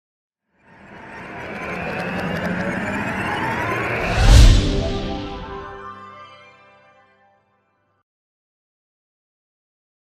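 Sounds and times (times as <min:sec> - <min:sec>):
synthetic whoosh with rising pitch: 0:00.6 - 0:06.1.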